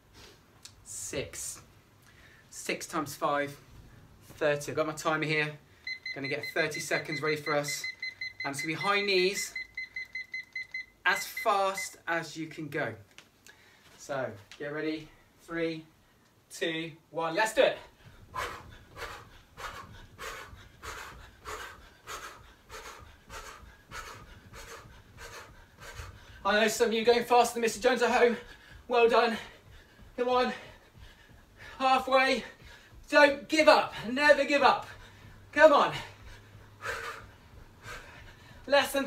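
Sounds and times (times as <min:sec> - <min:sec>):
man breathing hard: 0:17.8 - 0:26.5, 0:28.3 - 0:31.8, 0:32.4 - 0:33.1, 0:34.8 - 0:38.7
man panting: 0:17.8 - 0:26.5, 0:28.0 - 0:38.7.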